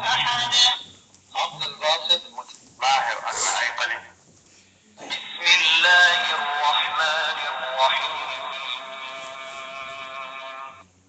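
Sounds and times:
man chanting through small speaker: 0.0 - 4.2, 5.1 - 10.8.

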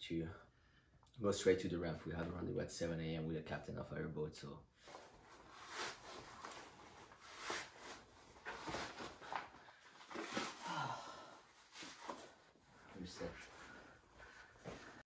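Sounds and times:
wetsuit rustling: 4.8 - 15.0.

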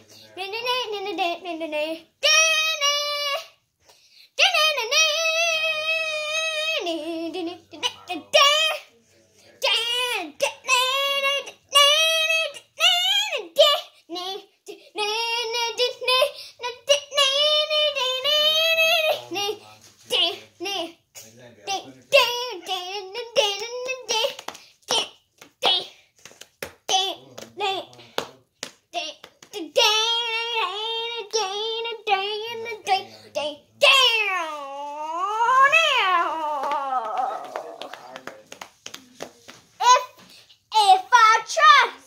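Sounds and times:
boy singing: 0.0 - 8.9, 9.5 - 26.0, 26.6 - 28.3, 28.9 - 38.2, 39.8 - 42.0
boy singing wailing note: 33.9 - 37.9.

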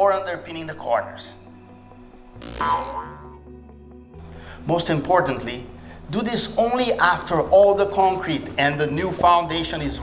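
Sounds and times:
quiet background music: 0.0 - 10.0
swoosh and hit sound effect: 2.4 - 3.4.

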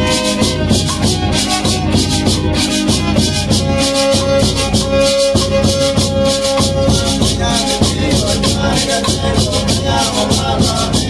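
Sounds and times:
strummed guitar: 0.0 - 11.0
violin playing: 0.0 - 11.0.

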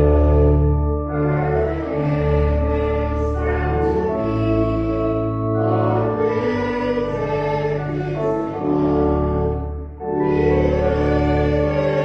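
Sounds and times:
sustained accompanying chords: 0.0 - 12.0
group singing a hymn: 1.2 - 12.0.

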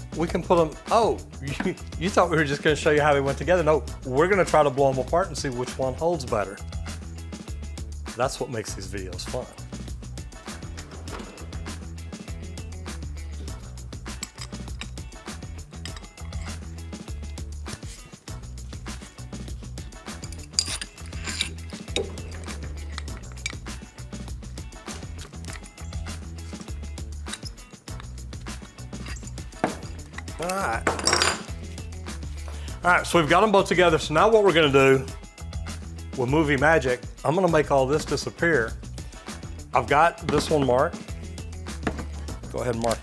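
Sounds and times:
background music with bass line: 0.0 - 43.0
metallic clinks of pipe fittings: 14.0 - 15.1, 15.7 - 16.7, 20.0 - 23.8, 25.2 - 28.2, 28.9 - 31.5.

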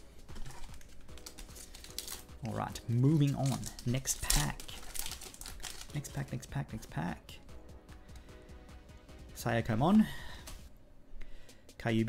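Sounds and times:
foil pack crinkling: 0.0 - 6.9
cards clicking and tapping: 0.1 - 6.6.

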